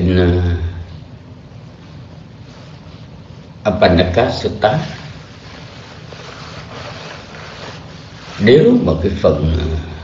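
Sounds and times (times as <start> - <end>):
open microphone hiss: 0.0 - 10.0.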